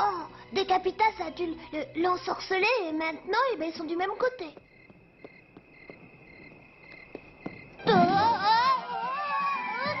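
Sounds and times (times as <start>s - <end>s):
crickets chirping: 0.2s - 9.0s.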